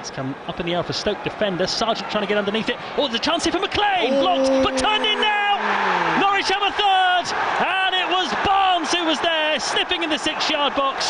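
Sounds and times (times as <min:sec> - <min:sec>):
stadium crowd noise: 0:00.0 - 0:11.0
football commentator talking: 0:00.2 - 0:11.0.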